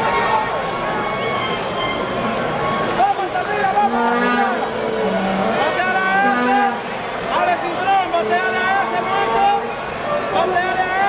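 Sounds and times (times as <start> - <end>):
long held notes from stands: 0.0 - 7.1
ballpark crowd noise: 0.0 - 11.0.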